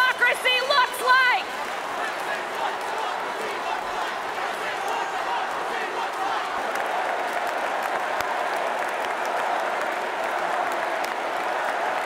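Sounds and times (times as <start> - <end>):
crowd chanting and shouting: 0.0 - 12.0
scattered clapping: 0.0 - 12.0.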